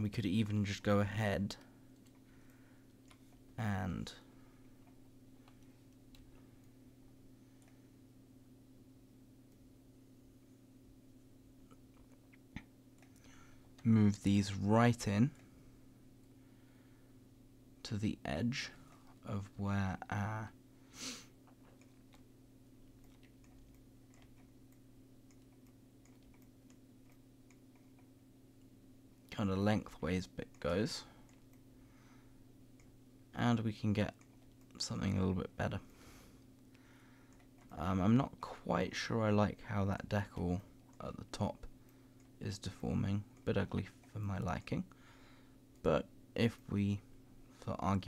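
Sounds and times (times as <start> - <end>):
low room hum: 0.0 - 48.0.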